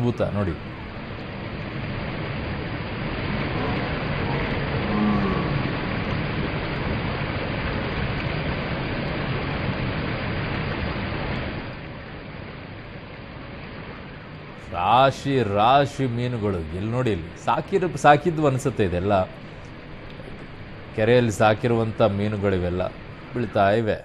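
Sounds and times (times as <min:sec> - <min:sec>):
water rushing down spillway: 0:00.0 - 0:24.0.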